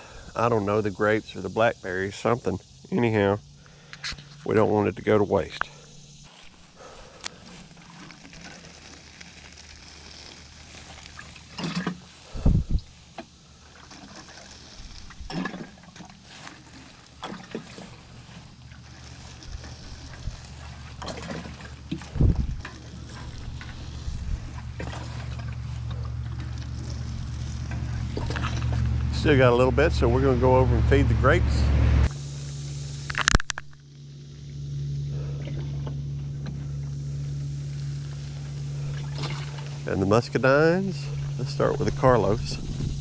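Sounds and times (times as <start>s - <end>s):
low engine hum: 0.0s - 43.0s
watering can sprinkling water: 6.3s - 30.1s.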